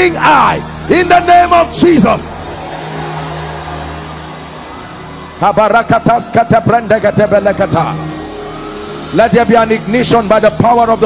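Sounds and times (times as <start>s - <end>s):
man preaching into a microphone: 0.0s - 2.4s, 5.4s - 8.0s, 9.1s - 11.0s.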